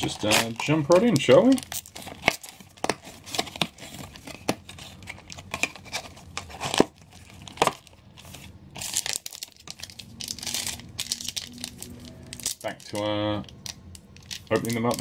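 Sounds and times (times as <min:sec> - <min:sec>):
foil wrappers crinkling: 0:00.0 - 0:15.0.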